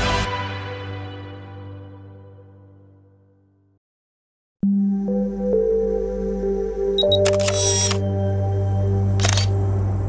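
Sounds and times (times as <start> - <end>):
ambient music: 4.6 - 10.0
camera focus beeps: 7.0 - 8.0, 9.2 - 9.5
camera shutter click: 7.0 - 8.1, 9.2 - 9.6.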